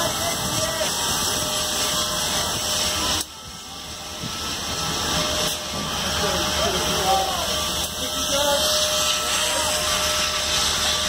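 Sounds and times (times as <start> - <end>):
steam locomotive hissing: 0.0 - 11.0.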